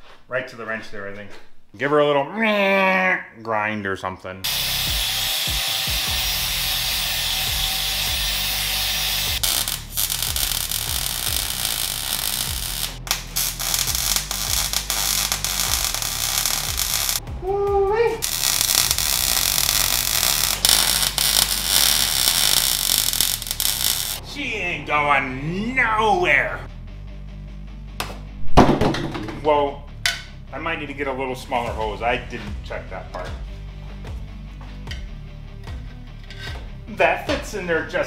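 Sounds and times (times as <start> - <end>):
angle grinder grinding metal: 4.5 - 17.2, 18.2 - 24.2.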